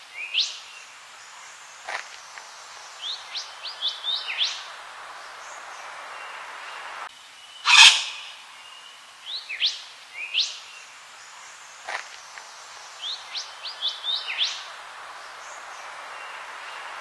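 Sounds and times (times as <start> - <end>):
bird calling: 7.6 - 8.8.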